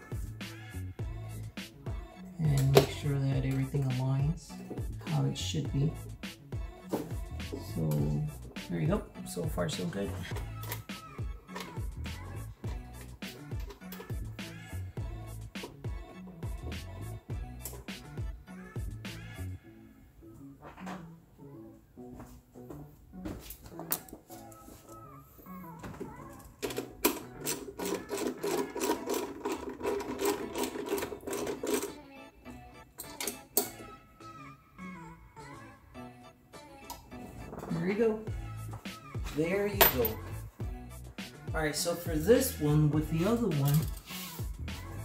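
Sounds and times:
background music: 0:00.0 - 0:45.0.

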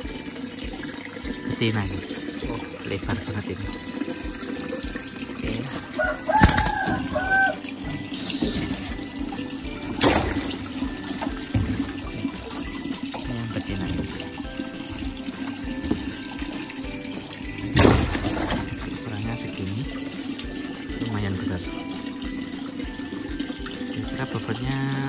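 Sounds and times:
water running and splashing: 0:00.0 - 0:25.0
sharp splashes: 0:04.8 - 0:07.6, 0:08.4 - 0:16.7, 0:17.4 - 0:21.2.

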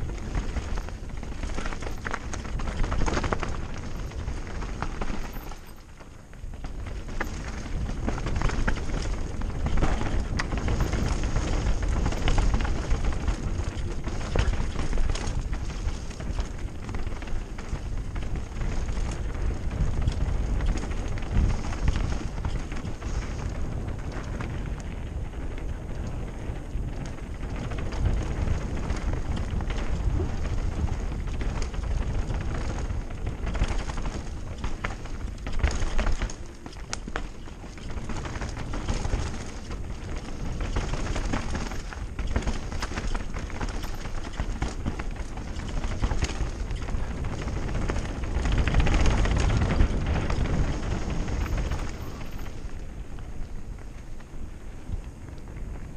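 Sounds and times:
bike rattling and knocking: 0:00.0 - 0:55.9
tyres running over dirt and stones: 0:00.0 - 0:55.9
wind rumble on microphone: 0:00.0 - 0:55.9.

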